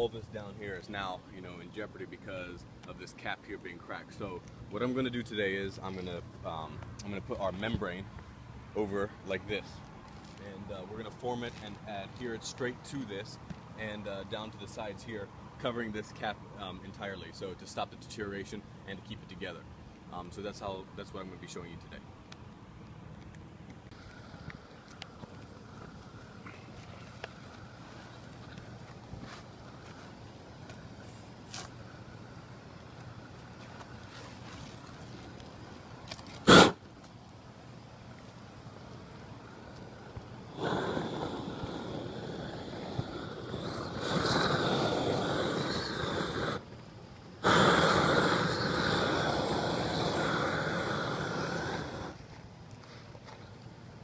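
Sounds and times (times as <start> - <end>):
roofing torch roaring: 36.3 - 36.8, 38.8 - 46.7, 47.3 - 52.2
sharp loud pop: 36.4 - 36.8.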